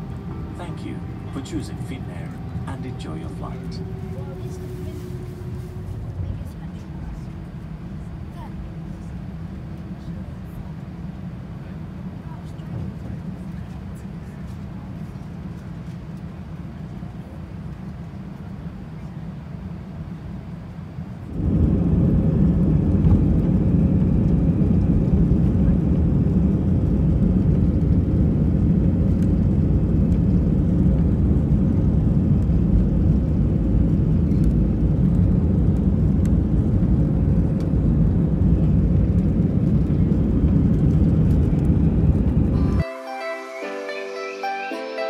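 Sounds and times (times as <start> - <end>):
jet engines at takeoff thrust: 0.0 - 42.8
wheels rumbling on runway: 0.0 - 42.8.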